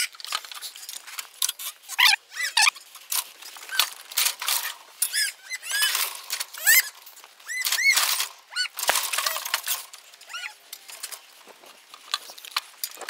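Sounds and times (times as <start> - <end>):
metal gates clanking and rattling: 2.7 - 13.0
small birds chirping: 4.9 - 8.8.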